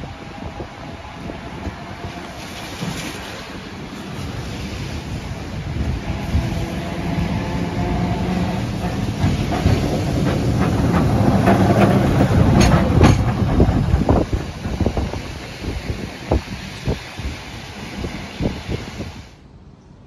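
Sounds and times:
electric tram passing: 0.0s - 19.4s
wheels clacking over rails: 5.9s - 16.4s.

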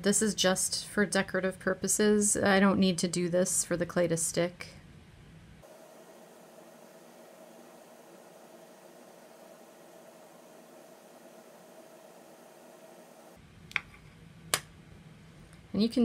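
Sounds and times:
faint hum: 0.0s - 16.0s.

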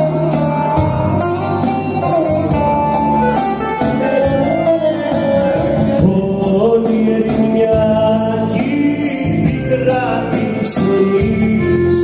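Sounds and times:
keyboard melody: 0.0s - 12.0s
lute strummed and plucked: 0.0s - 12.0s
man singing: 4.9s - 12.0s.

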